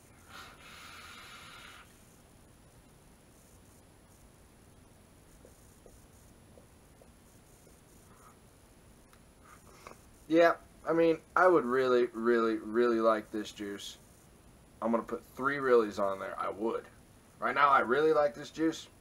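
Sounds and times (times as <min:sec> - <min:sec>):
airy hiss of vape drag: 0:00.0 - 0:02.1
faint ticks: 0:05.3 - 0:08.3.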